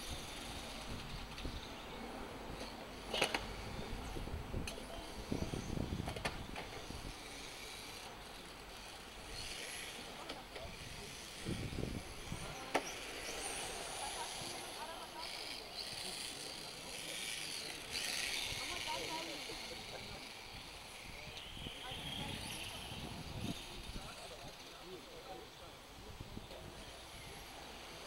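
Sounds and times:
rc car motor whine: 0:00.0 - 0:01.9, 0:02.6 - 0:28.0.

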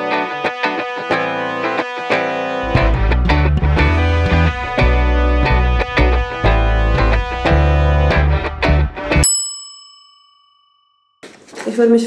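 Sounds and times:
rock music with guitar and bass: 0:00.0 - 0:09.2
bright bell-like ding: 0:09.2 - 0:11.2.

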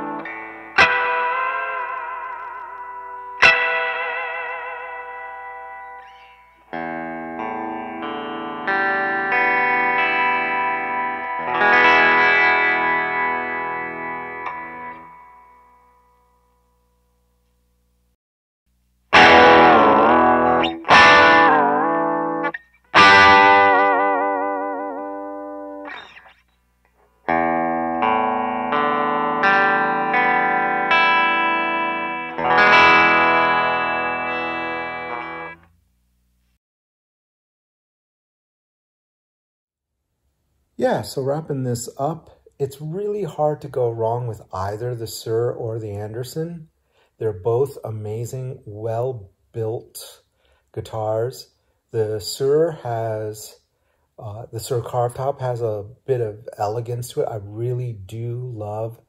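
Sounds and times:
electric guitar notes wavering in pitch: 0:00.0 - 0:16.4, 0:19.1 - 0:26.4, 0:27.3 - 0:35.6
electric guitar ringing chords: 0:00.0 - 0:17.7, 0:19.1 - 0:35.7.

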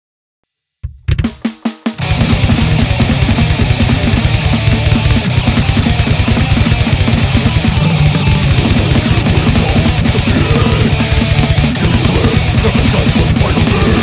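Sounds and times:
drum kit: 0:00.8 - 0:14.0
electric bass: 0:02.0 - 0:14.0
electric guitar: 0:02.0 - 0:14.0.

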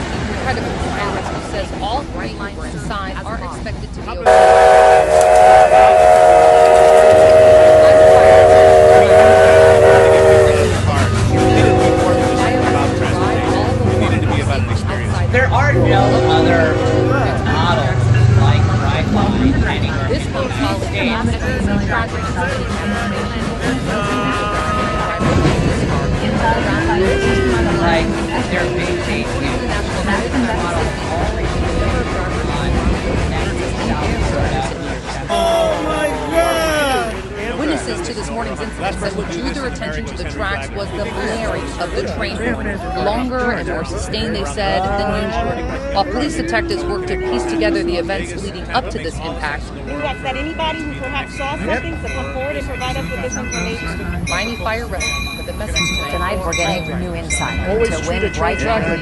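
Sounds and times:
overlapping voices: 0:04.1 - 0:49.3
train horn blast: 0:04.3 - 0:14.8, 0:15.5 - 0:18.9, 0:23.8 - 0:25.7, 0:46.2 - 0:48.1.

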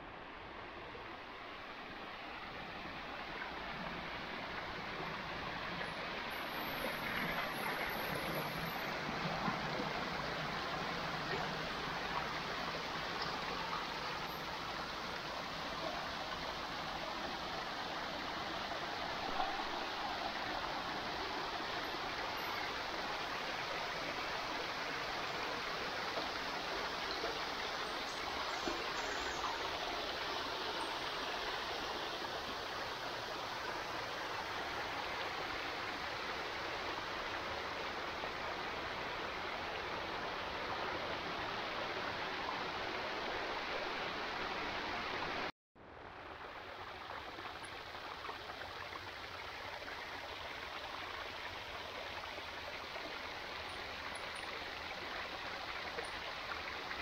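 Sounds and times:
small waterfall splashing: 0:01.5 - 0:57.0.

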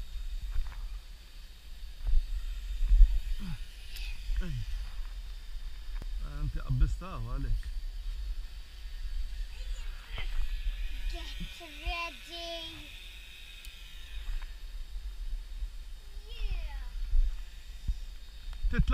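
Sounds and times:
wind rumbling on microphone: 0:13.8 - 0:18.9.

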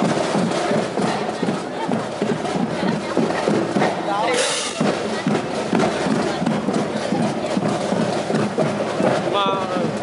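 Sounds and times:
voices close by: 0:00.0 - 0:10.0.

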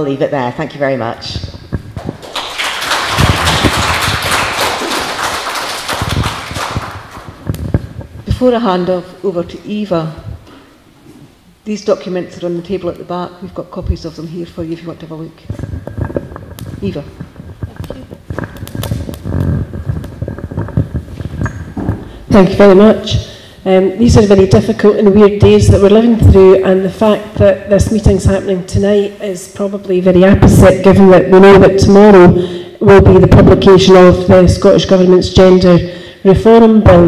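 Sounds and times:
microphone handling knocks and rubbing: 0:01.3 - 0:02.2, 0:06.0 - 0:08.5, 0:15.4 - 0:23.0
audience applauding: 0:02.0 - 0:07.4.

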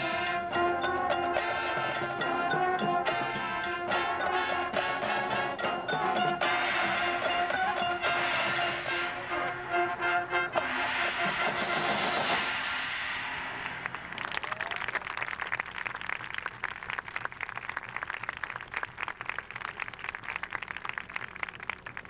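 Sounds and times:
horns and drums held chord: 0:00.0 - 0:14.1
crowd applauding: 0:13.6 - 0:22.0.

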